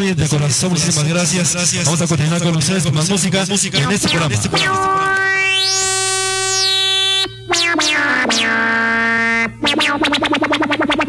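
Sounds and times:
sustained synthesizer chord: 3.7s - 11.0s.

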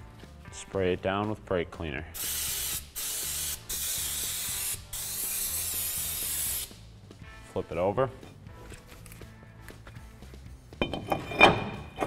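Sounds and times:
metallic clank and ringing: 10.8s - 12.0s.

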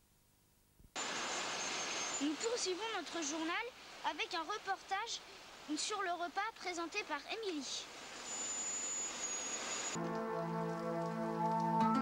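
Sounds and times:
faint high-pitched whine: 0.1s - 10.0s
videotape hiss: 0.9s - 12.0s
music: 10.0s - 12.0s.

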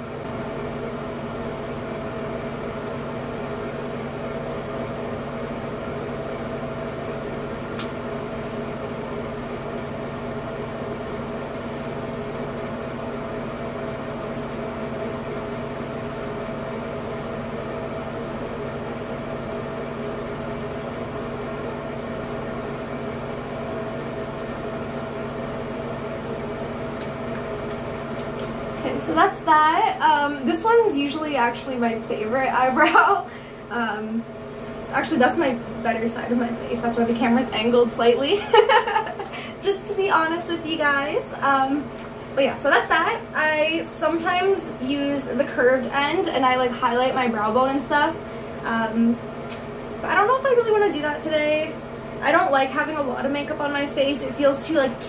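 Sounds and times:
fan unit humming: 0.0s - 55.0s.

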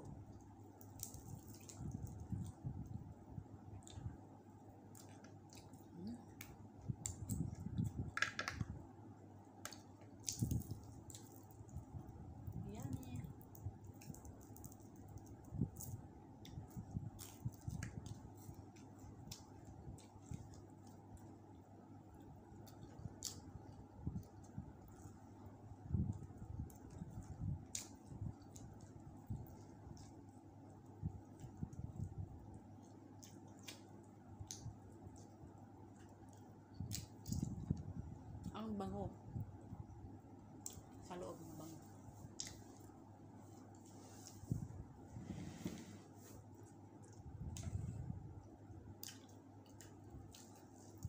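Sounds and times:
chewing and mouth sounds: 25.9s - 30.4s, 31.0s - 38.4s, 46.5s - 51.0s.

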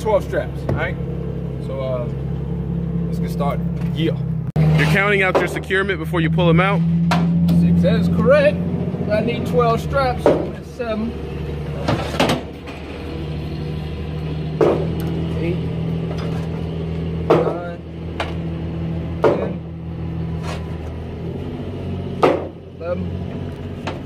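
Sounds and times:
low engine hum: 0.0s - 24.0s.

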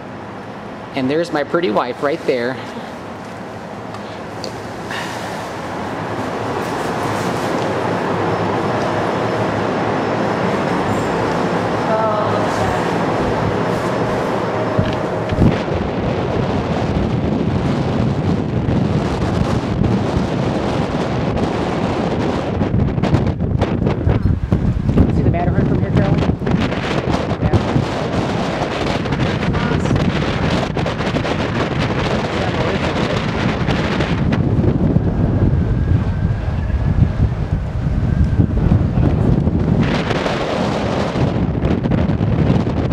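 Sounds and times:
cable car rumble and wind: 0.0s - 42.9s.

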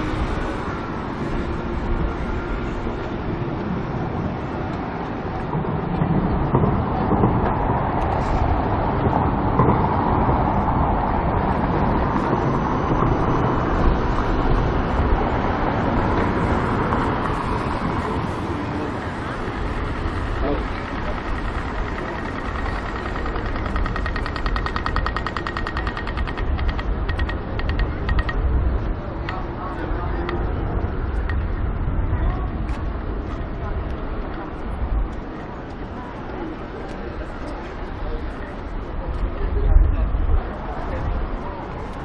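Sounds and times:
passers-by talking: 0.0s - 42.0s
traffic on wet roads: 0.0s - 42.0s
rapid regular ticking: 19.4s - 28.4s.

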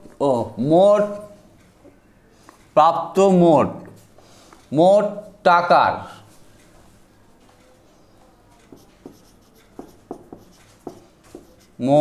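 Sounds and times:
marker pen on whiteboard: 6.3s - 12.0s.

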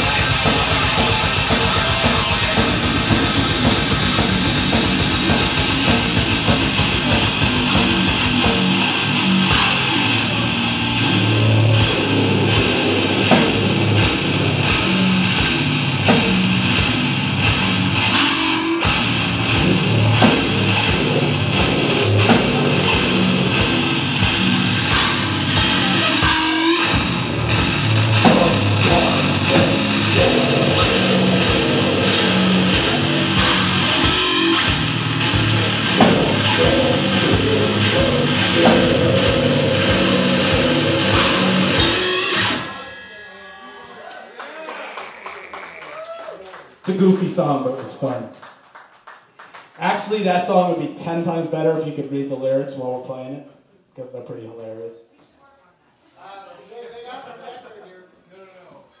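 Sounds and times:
drum kit: 0.0s - 45.1s
heavy electric guitar riffing: 0.0s - 45.8s
cymbal crashes: 24.9s - 44.1s.

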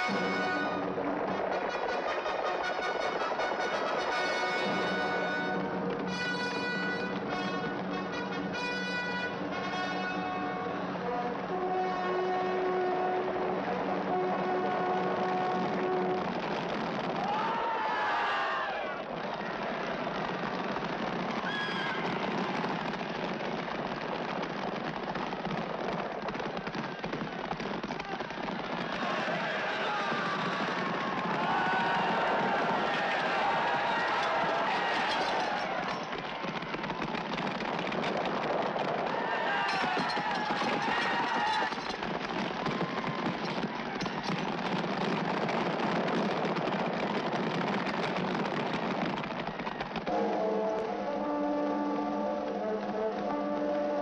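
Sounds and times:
brass fanfare: 0.0s - 16.4s, 50.1s - 54.0s
horses galloping: 11.1s - 54.0s
men shouting: 28.9s - 30.6s, 31.3s - 35.9s.

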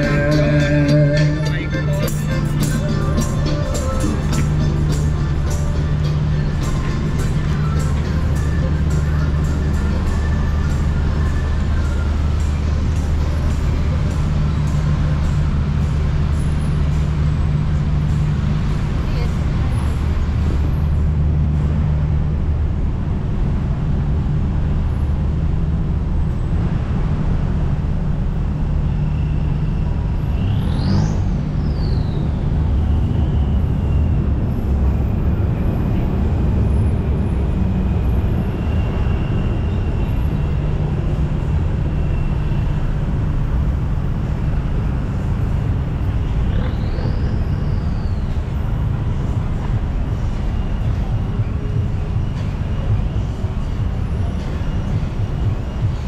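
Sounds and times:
car engines idling: 0.0s - 56.0s.

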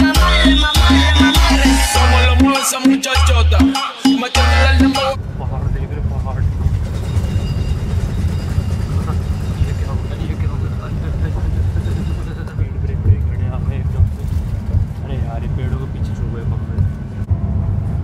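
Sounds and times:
bus engine and road rumble: 5.2s - 18.0s.

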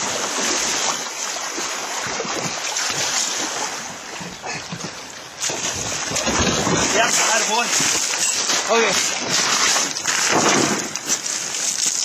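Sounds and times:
fast river water flowing: 0.0s - 12.0s
wind buffeting microphone: 3.9s - 8.0s.

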